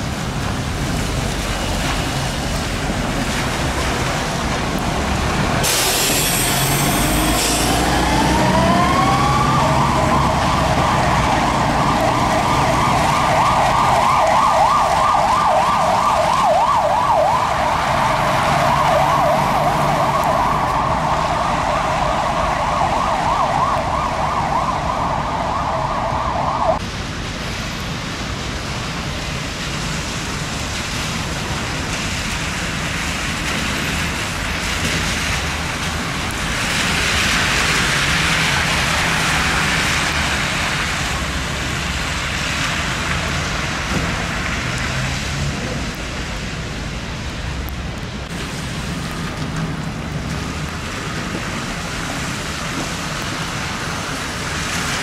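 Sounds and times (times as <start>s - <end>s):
bus passing: 0.0s - 28.0s, 29.5s - 55.0s
traffic on a wet road: 0.0s - 55.0s
emergency siren warbling: 6.0s - 26.8s.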